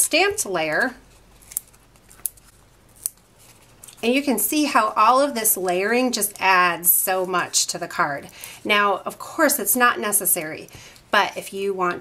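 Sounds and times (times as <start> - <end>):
paper handling: 0.2 - 4.8.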